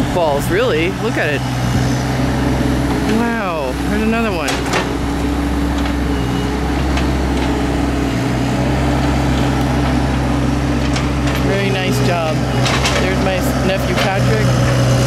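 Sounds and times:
diesel engine running: 0.0s - 15.0s.

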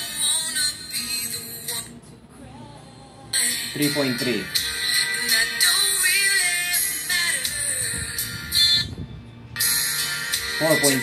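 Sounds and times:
thin treble-heavy song with vocals: 0.0s - 9.0s.

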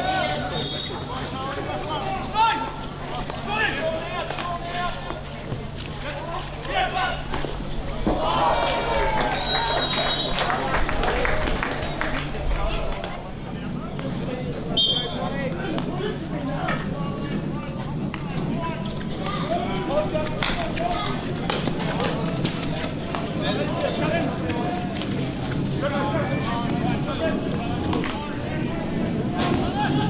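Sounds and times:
short high whistle blast: 14.8s - 15.2s.

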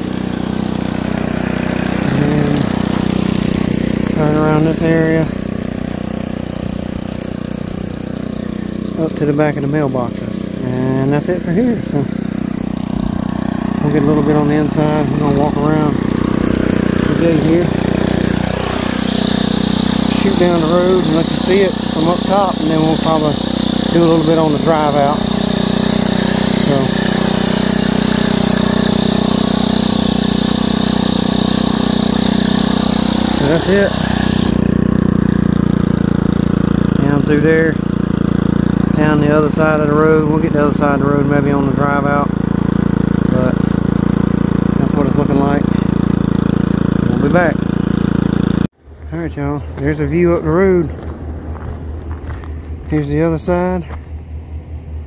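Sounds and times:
string trimmer engine running: 0.0s - 55.0s.

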